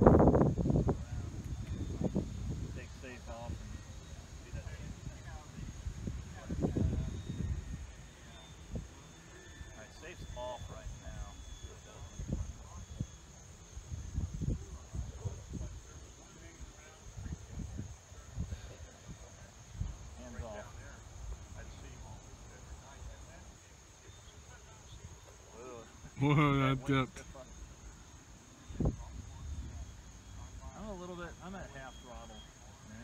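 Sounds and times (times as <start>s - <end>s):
wind buffeting microphone: 0.0s - 8.1s, 13.7s - 23.1s
crickets chirring: 0.0s - 33.0s.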